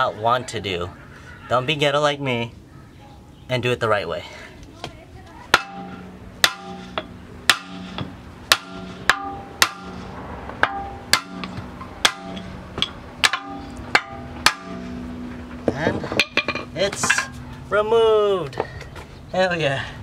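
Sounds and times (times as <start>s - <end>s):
hammer blows on metal: 5.5s - 17.4s.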